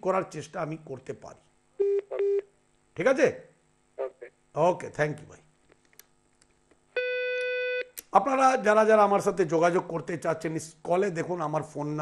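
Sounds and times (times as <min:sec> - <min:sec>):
telephone beeps: 0:01.8 - 0:02.5.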